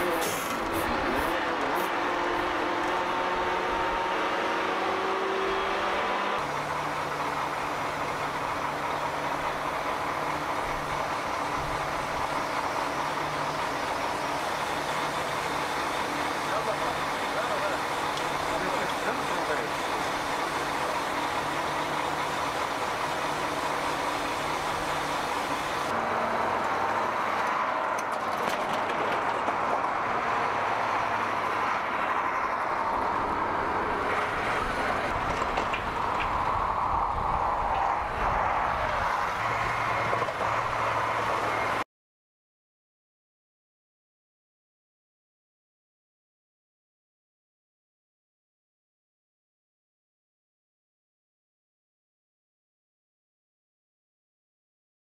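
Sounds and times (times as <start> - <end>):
truck engine running: 4.8 - 41.8.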